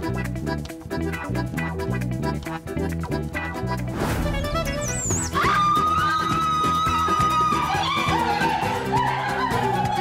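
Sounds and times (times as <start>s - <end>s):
comedic background music: 0.0s - 10.0s
held high note: 4.0s - 6.1s.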